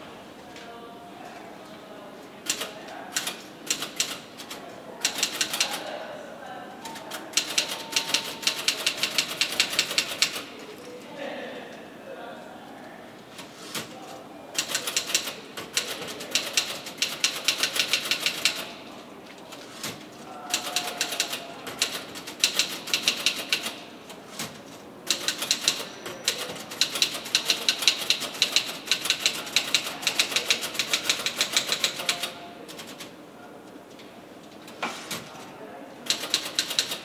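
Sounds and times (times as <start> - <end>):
rapid keyboard typing: 2.5 - 5.8, 7.0 - 10.5, 14.6 - 18.8, 19.5 - 33.1, 36.1 - 37.0.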